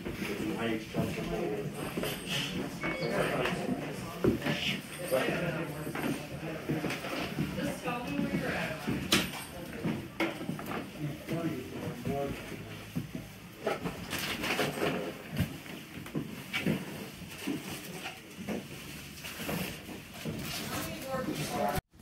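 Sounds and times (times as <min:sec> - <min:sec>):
indistinct chatter: 0:00.2 - 0:12.9.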